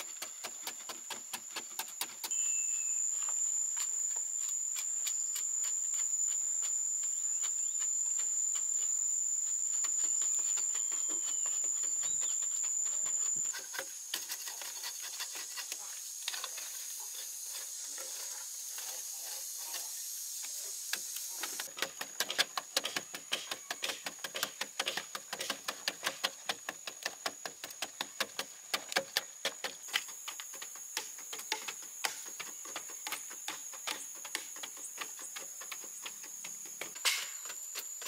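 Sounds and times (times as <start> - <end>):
hoes chopping and scraping soil: 0.0 - 38.0
high-pitched insect drone: 2.3 - 21.7.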